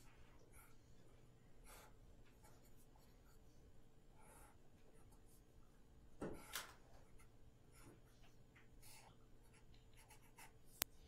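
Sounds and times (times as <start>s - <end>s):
marker drawing on paper: 1.6s - 3.4s, 8.8s - 10.8s.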